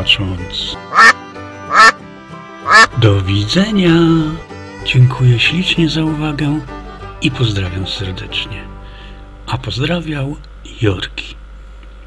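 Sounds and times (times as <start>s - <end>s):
duck quacking: 0.9s - 2.0s, 2.6s - 3.0s.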